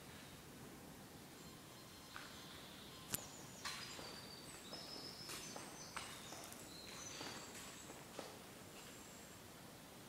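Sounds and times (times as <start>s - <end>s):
footsteps on concrete: 3.6s - 9.0s.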